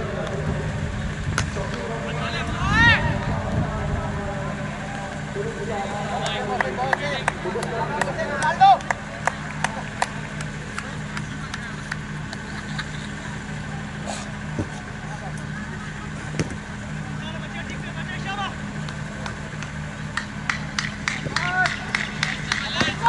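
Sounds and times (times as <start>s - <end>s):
distant players calling and shouting: 0.0s - 23.0s
steady low hum: 0.0s - 23.0s.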